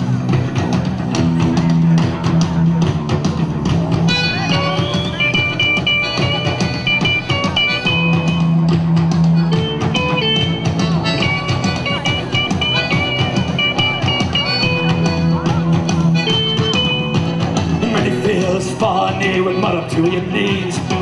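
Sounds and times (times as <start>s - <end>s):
rock band playing: 0.0s - 21.0s
high lead melody: 2.6s - 20.8s.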